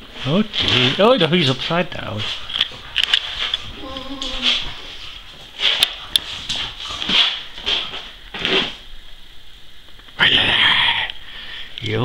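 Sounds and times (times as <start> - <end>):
dog huffing and snuffling: 2.2 - 8.5
dog whining: 3.6 - 5.1.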